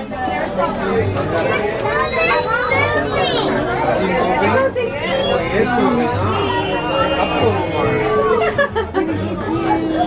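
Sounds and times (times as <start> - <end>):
chatter of voices: 0.0 - 10.0
children's high-pitched voices: 1.4 - 3.8.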